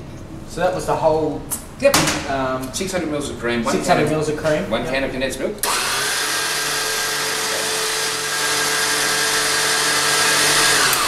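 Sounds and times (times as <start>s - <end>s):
stand mixer motor whine: 5.6s - 11.0s.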